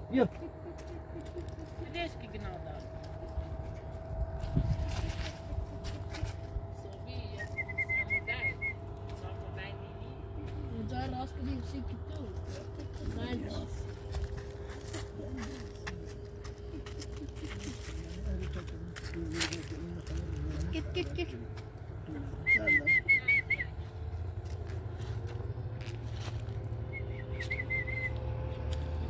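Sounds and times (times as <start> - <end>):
indistinct voices: 0.0 - 23.9
steady low hum: 0.0 - 29.0
footsteps on stony ground: 2.8 - 7.7, 10.4 - 22.0, 23.7 - 27.7.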